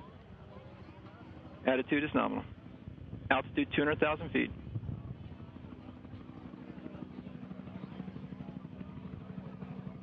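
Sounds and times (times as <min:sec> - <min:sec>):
faint background murmur: 0:00.0 - 0:10.0
steady low hum: 0:00.0 - 0:10.0.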